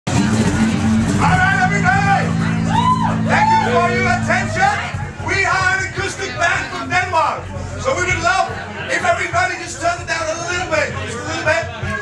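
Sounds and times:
acoustic band playing: 0:00.1 - 0:12.0
singer wailing: 0:01.2 - 0:05.0.

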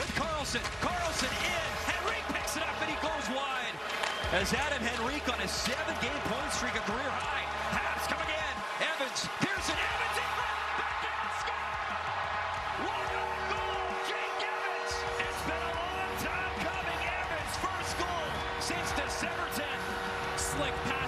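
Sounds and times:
crowd cheering: 0:00.0 - 0:21.0
music over arena speakers: 0:00.0 - 0:21.0.

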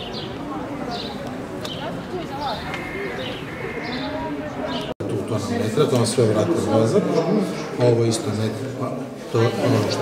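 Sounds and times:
birds chirping: 0:00.0 - 0:05.0
people talking outdoors: 0:00.0 - 0:10.0.

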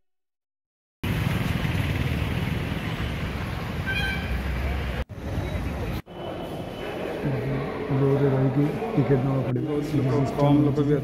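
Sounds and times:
traffic rumble: 0:01.0 - 0:10.8
people's voices: 0:04.6 - 0:11.0.

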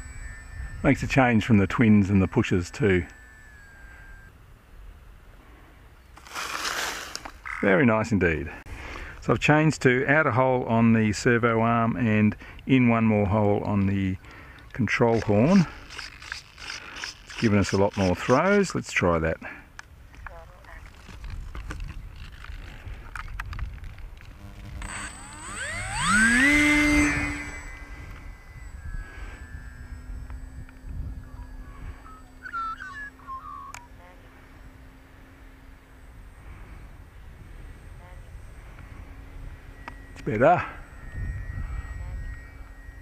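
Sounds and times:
rc plane electric motor whine: 0:00.0 - 0:04.4, 0:06.2 - 0:07.6, 0:14.2 - 0:18.7, 0:20.9 - 0:32.5, 0:33.1 - 0:43.0.

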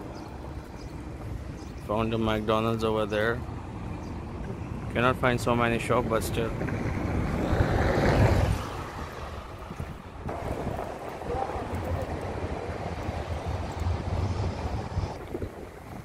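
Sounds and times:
wind buffeting microphone: 0:03.2 - 0:16.0.

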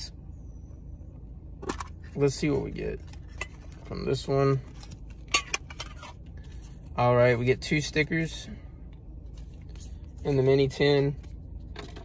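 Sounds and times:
cards and stickers handled: 0:09.2 - 0:12.0.

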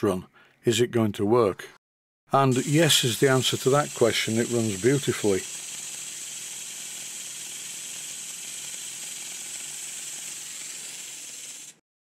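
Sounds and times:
pump hissing exhaust air: 0:02.4 - 0:11.8.

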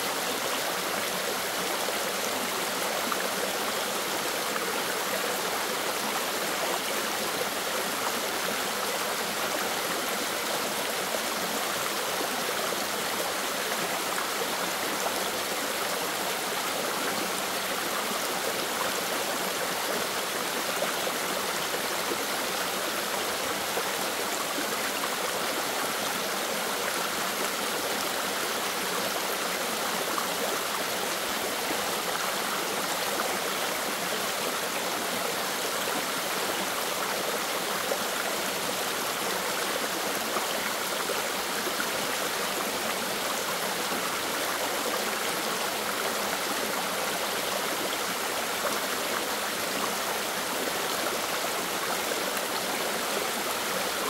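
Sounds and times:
stream pouring over rocks: 0:00.0 - 0:54.0.

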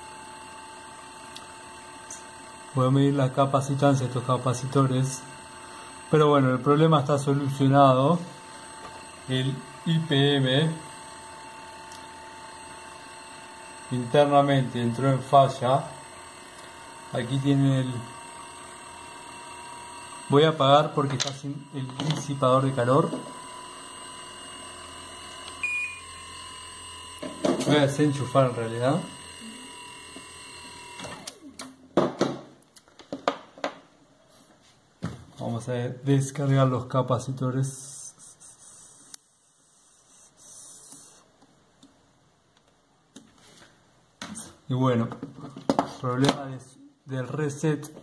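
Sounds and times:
thin high whine: 0:00.0 - 0:01.4, 0:02.0 - 0:31.5, 0:37.6 - 0:41.3
compressor running: 0:00.0 - 0:32.4, 0:36.0 - 0:41.4.

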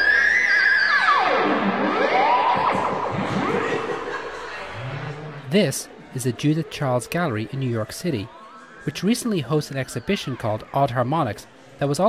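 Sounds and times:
theremin gliding in pitch: 0:00.0 - 0:04.4.

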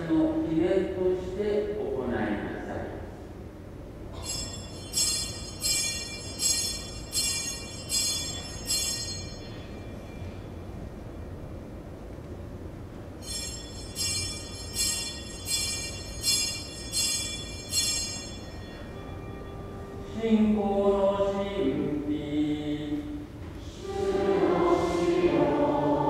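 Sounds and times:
altar bells ringing: 0:04.2 - 0:11.1, 0:13.2 - 0:21.4.

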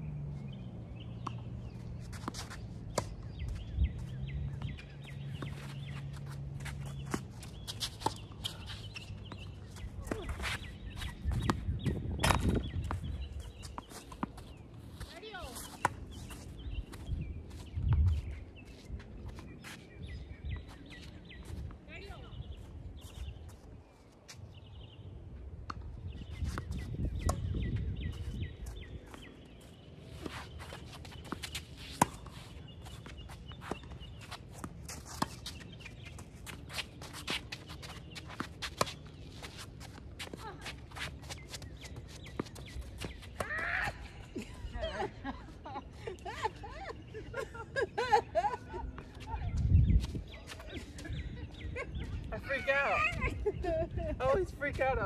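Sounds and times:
footsteps scuffing on court: 0:01.2 - 0:24.6, 0:26.3 - 0:43.8.

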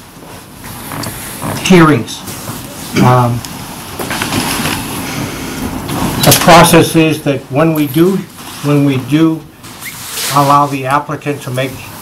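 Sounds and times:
rustling and shuffling: 0:00.0 - 0:12.0.

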